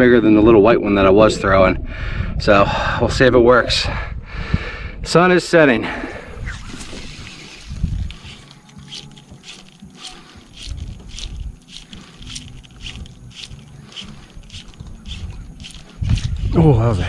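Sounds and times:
wind on microphone: 0:00.5 - 0:05.2, 0:05.9 - 0:08.6, 0:12.3 - 0:17.0
fishing line rasping through guides: 0:06.1 - 0:17.0.

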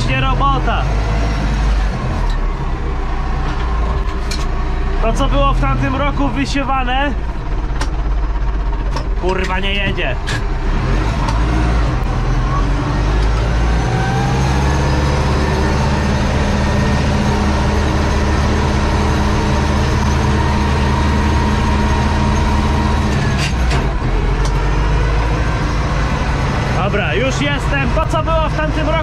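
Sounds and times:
tractor diesel engine running: 0:00.0 - 0:29.0.

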